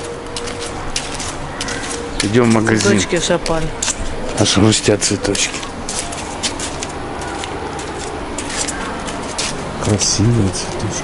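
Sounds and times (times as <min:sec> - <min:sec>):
outdoor background noise: 0:00.0 - 0:11.0
light clicks and rustles: 0:05.3 - 0:10.0.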